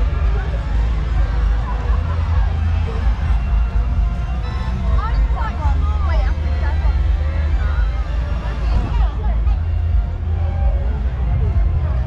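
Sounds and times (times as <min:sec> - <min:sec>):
heavy low rumble: 0:00.0 - 0:12.0
music: 0:00.0 - 0:12.0
voices: 0:00.0 - 0:12.0.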